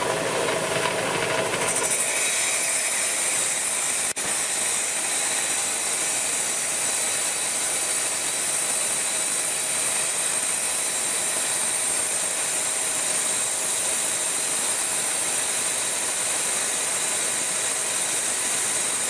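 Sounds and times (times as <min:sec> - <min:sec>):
wet saw grinding rock: 0:01.4 - 0:19.0.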